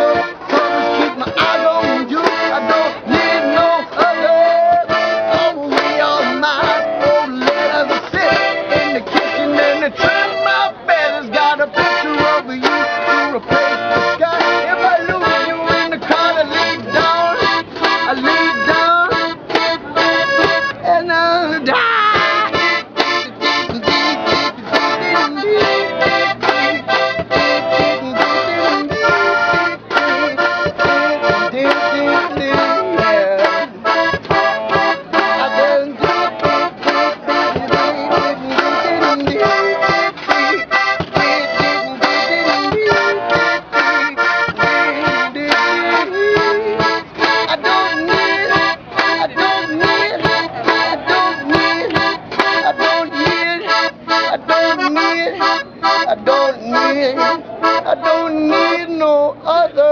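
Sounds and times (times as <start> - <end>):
quick percussive beat: 0.0 - 20.8, 21.8 - 55.5
piano accordion playing: 0.0 - 59.9.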